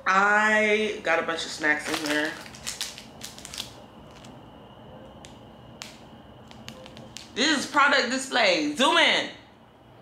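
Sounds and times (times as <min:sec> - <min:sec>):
faint high whine: 0:00.0 - 0:10.0
wrapper clicks and ticks: 0:01.8 - 0:04.4, 0:05.2 - 0:07.4.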